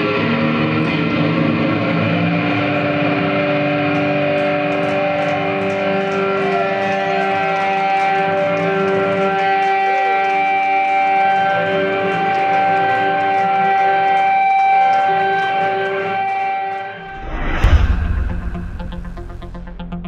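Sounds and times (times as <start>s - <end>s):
electric guitar feedback drone: 0.0s - 20.0s.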